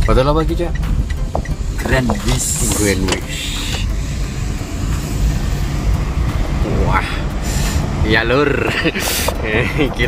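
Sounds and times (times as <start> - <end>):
car engine and tyres rumble: 0.0 - 10.0.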